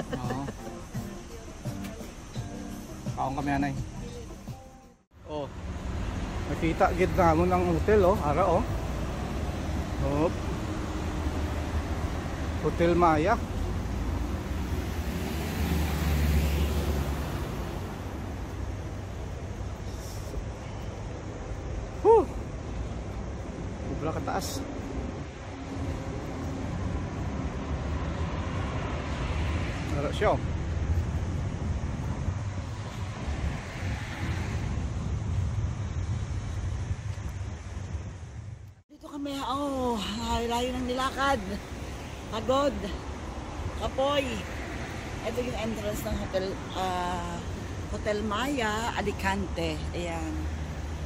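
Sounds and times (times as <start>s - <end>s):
road traffic hum: 0.0s - 51.0s
vehicle engine passing: 5.3s - 20.2s
wind buffeting microphone: 20.4s - 38.8s.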